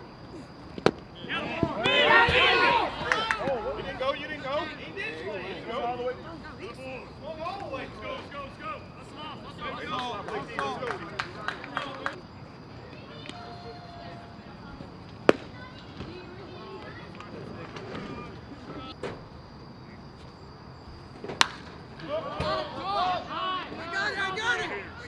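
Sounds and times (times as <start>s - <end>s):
players and spectators shouting: 1.2s - 12.2s, 12.9s - 14.6s, 22.0s - 25.0s
faint distant voices: 1.2s - 19.0s
bat hitting ball crack: 15.3s - 15.5s, 21.3s - 21.8s.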